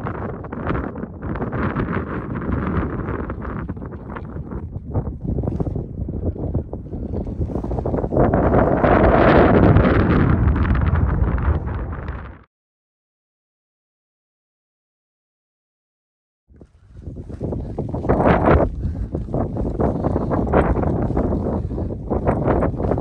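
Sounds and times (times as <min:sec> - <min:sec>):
deep rumble: 0:00.0 - 0:12.5
wind buffeting microphone: 0:00.0 - 0:12.5, 0:16.5 - 0:23.0.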